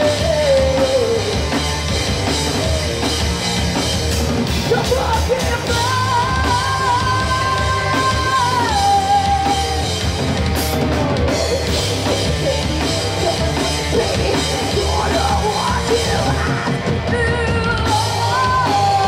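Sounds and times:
singer's vocals: 0.0s - 1.6s, 4.5s - 10.1s, 10.7s - 19.0s
heavy metal band playing live: 0.0s - 19.0s.

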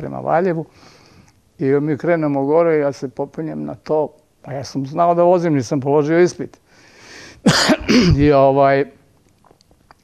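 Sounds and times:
man clearing his throat: 7.4s - 8.3s.

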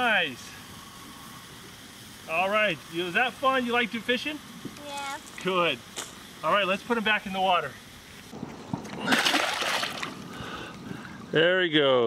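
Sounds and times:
fish splashing in water: 8.8s - 10.6s.

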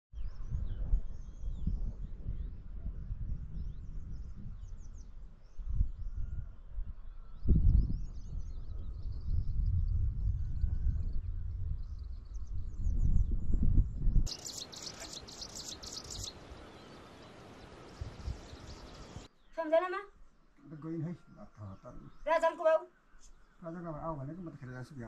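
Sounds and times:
wind buffeting microphone: 0.1s - 19.3s
birds chirping: 14.3s - 25.0s.

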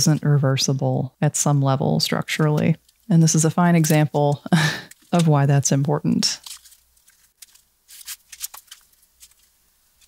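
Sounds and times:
paper rustling: 4.8s - 5.4s, 6.4s - 9.6s.

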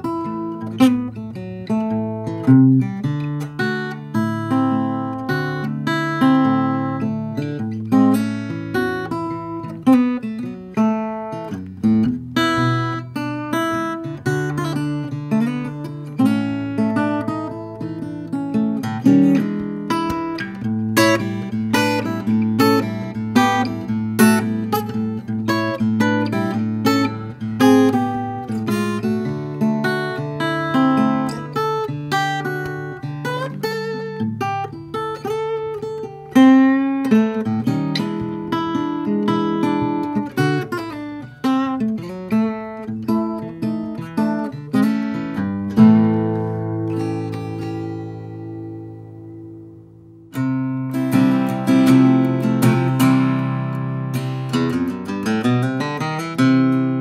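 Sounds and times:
fingerstyle acoustic guitar: 0.0s - 57.0s.

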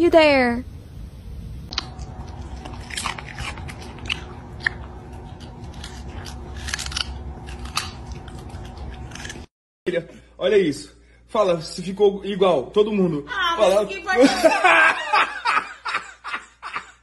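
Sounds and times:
dog crunching carrot: 1.7s - 9.5s.

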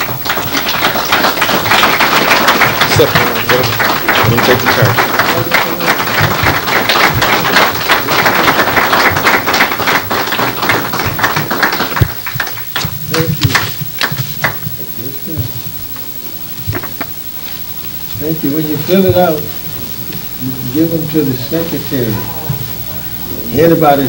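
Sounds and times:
audience clapping: 0.0s - 24.0s
voices: 0.0s - 24.0s.

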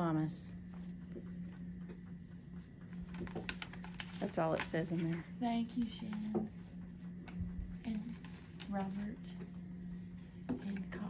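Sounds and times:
steady low hum: 0.0s - 11.0s
paper rustling: 3.0s - 6.4s.

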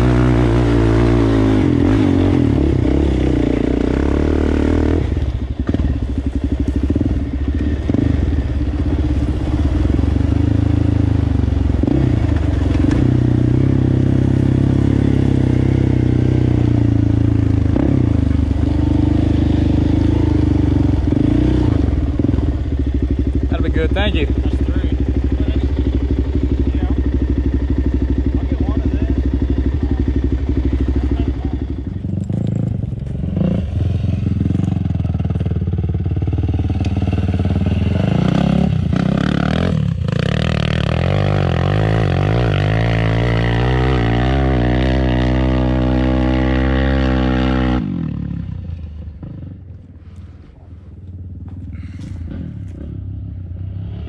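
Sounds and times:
atv engine revving: 0.0s - 54.0s.

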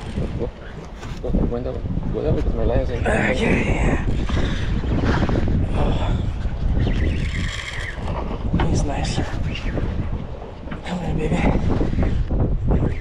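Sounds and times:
boat and sea rumble: 0.0s - 13.0s
wind buffeting microphone: 0.0s - 13.0s
indistinct voices: 2.9s - 4.6s, 10.8s - 11.7s.

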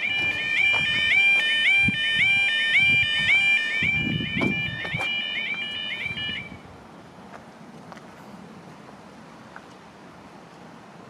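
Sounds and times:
level crossing alarm warbling: 0.0s - 6.6s.

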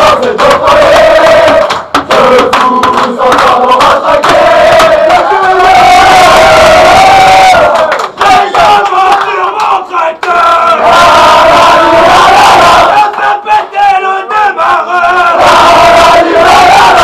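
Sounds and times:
clapping: 0.0s - 5.5s, 6.2s - 10.9s
men chanting and shouting: 0.0s - 17.0s.

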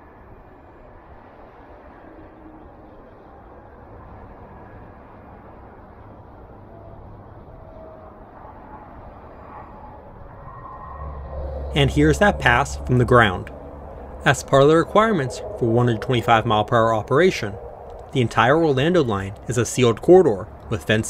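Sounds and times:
distant vehicles rumbling: 0.0s - 21.0s.

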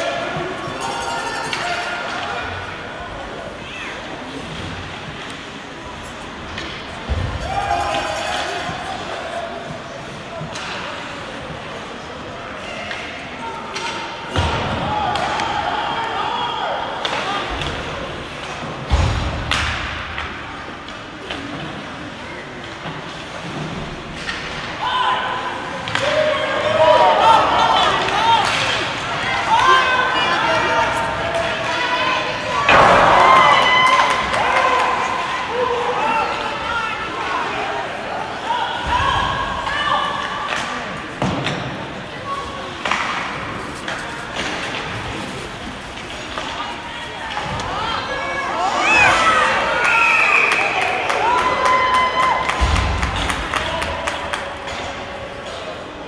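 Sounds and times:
spectators shouting: 24.8s - 40.4s, 46.8s - 55.1s.

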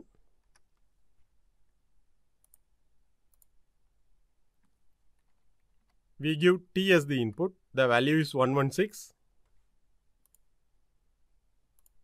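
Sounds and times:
faint clicks: 2.4s - 2.7s, 3.3s - 3.6s, 10.2s - 10.5s, 11.8s - 12.0s.

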